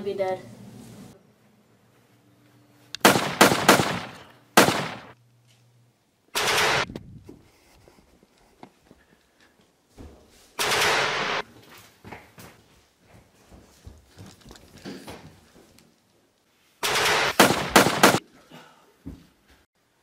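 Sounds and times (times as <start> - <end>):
gunshots: 3.0 - 5.2, 6.4 - 6.9, 10.6 - 11.4, 16.8 - 18.2
rapid automatic gunfire: 3.0 - 5.2, 6.4 - 6.9, 10.6 - 11.4, 16.8 - 18.2.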